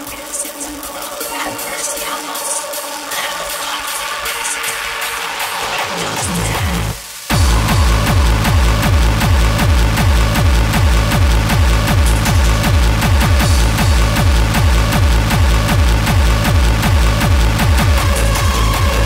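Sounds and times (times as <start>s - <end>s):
dense distorted noise: 6.0s - 19.0s
heavy kick drums: 6.0s - 19.0s.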